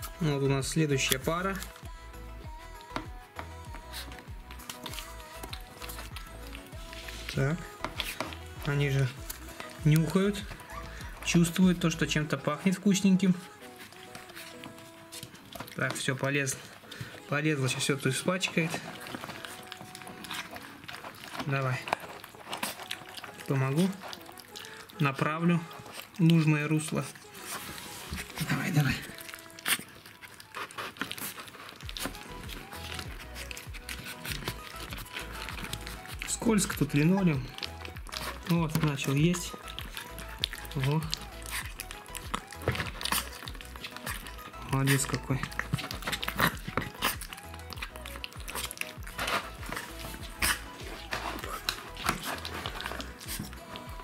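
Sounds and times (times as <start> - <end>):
background music: 0.0 - 54.0
puppy lapping from a bowl: 15.1 - 54.0.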